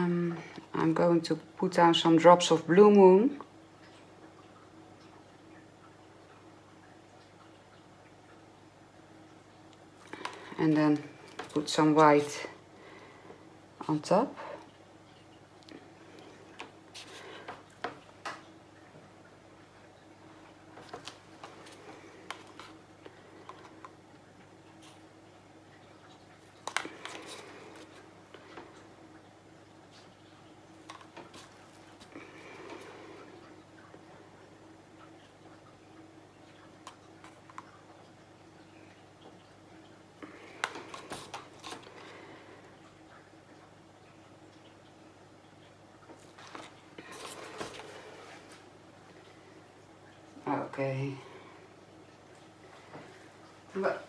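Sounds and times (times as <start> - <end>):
paint bottles clicking and tapping: 26.6 - 28.0.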